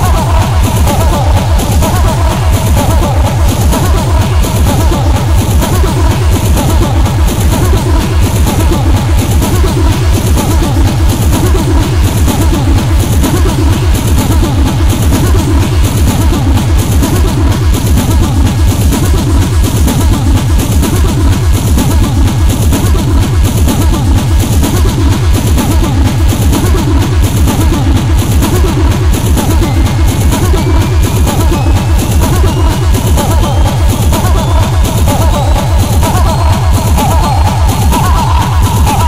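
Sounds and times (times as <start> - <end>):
fast repeating kick drums: 0.0 - 39.0
speedcore electronic music: 0.0 - 39.0.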